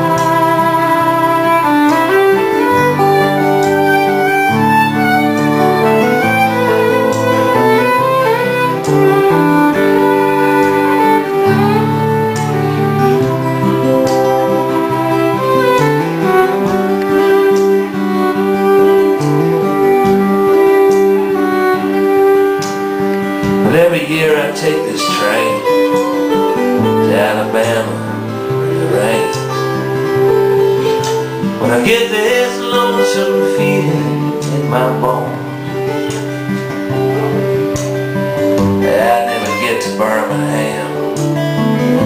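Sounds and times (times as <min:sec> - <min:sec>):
fiddle melody: 0:00.0 - 0:42.0
strummed acoustic guitars: 0:00.0 - 0:42.0.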